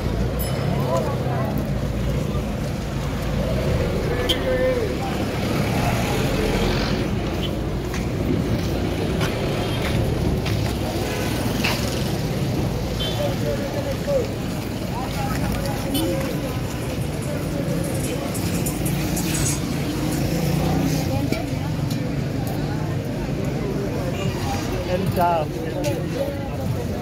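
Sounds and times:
passers-by chatter: 0.0s - 27.0s
vehicle engines rumbling: 0.0s - 27.0s.

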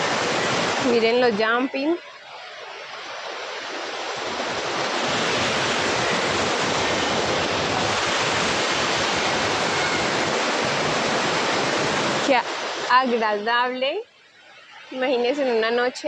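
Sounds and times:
creek rushing over rocks: 0.0s - 13.8s.

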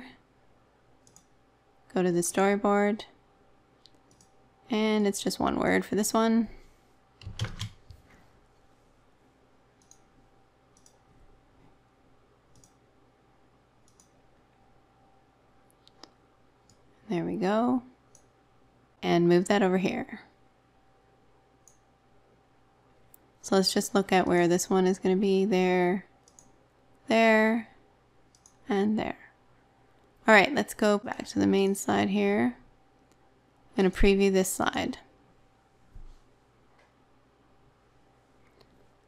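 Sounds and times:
computer mouse clicks: 1.0s - 1.4s, 3.8s - 4.4s, 7.2s - 7.9s, 9.8s - 10.1s, 10.7s - 11.1s, 12.5s - 12.8s, 13.8s - 14.2s, 18.1s - 18.3s, 21.6s - 21.9s, 26.2s - 26.6s, 28.3s - 28.6s.

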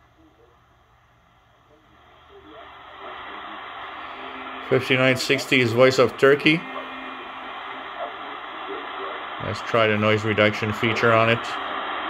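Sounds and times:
faint garbled radio voice: 0.0s - 0.6s, 1.6s - 12.0s
radio static hiss: 0.0s - 12.0s.

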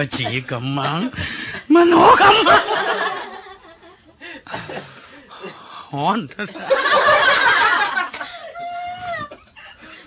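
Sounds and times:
audience laughing: 6.5s - 8.2s.

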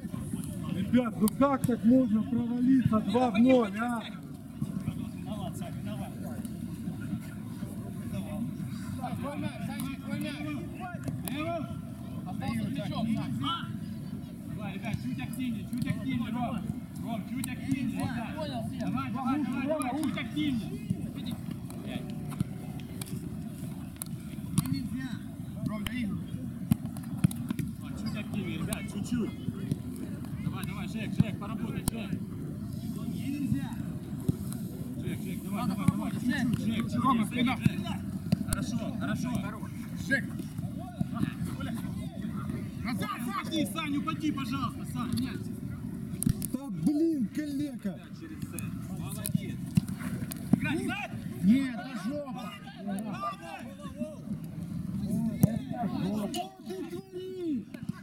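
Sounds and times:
football being kicked: 55.3s - 55.7s.

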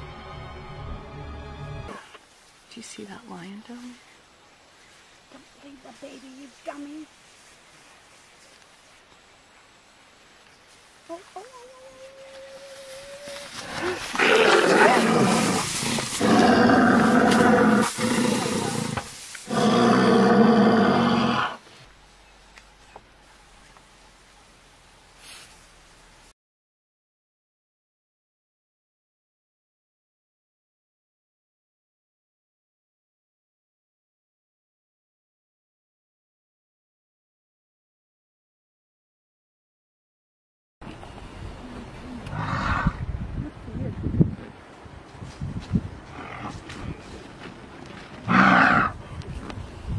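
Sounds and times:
lion growling: 13.6s - 21.6s.

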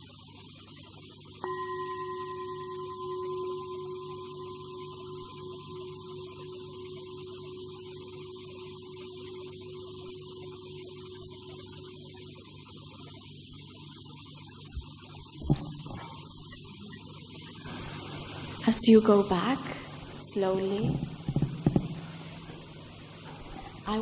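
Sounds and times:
singing bowl ringing: 1.4s - 13.8s.

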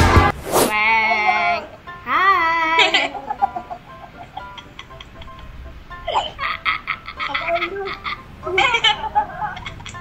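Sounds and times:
person laughing in rapid pulses: 2.9s - 5.5s, 6.1s - 10.0s.

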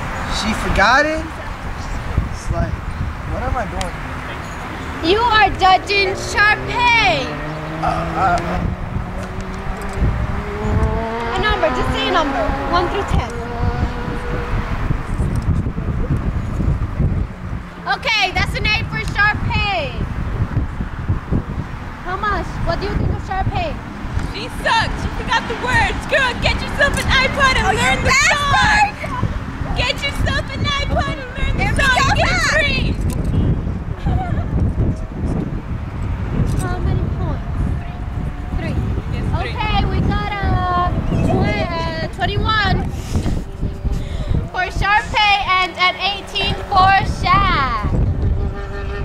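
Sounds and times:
faint voices talking: 0.0s - 20.6s, 21.9s - 49.0s
wind buffeting microphone: 0.0s - 49.0s.

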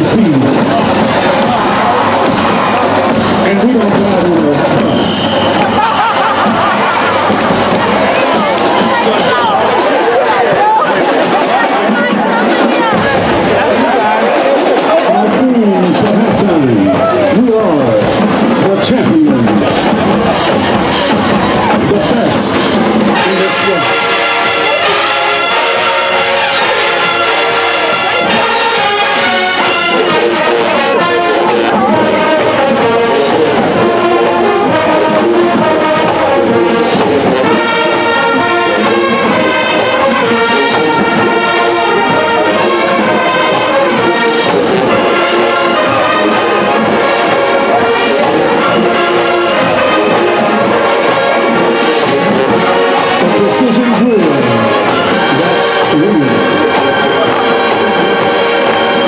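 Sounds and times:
marching band brass chords: 0.0s - 59.0s
stadium crowd cheering: 0.0s - 59.0s.

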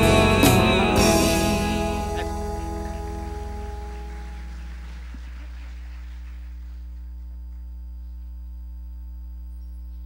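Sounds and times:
electrical mains hum: 1.6s - 10.0s.

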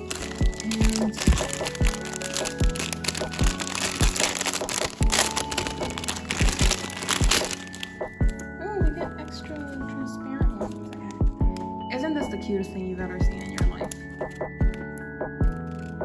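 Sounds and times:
plastic packaging crinkling: 0.0s - 11.8s, 13.2s - 16.0s
background music with steady beat: 0.0s - 16.0s.

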